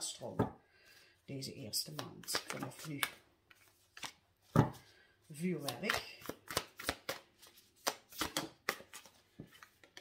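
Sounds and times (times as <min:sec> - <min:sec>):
cards clicking and rubbing: 0:01.9 - 0:04.2, 0:05.4 - 0:10.0.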